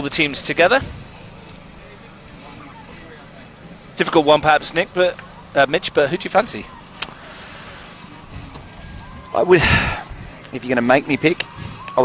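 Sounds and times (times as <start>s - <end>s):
generator running: 0.0s - 12.0s
open-air ambience: 0.0s - 12.0s.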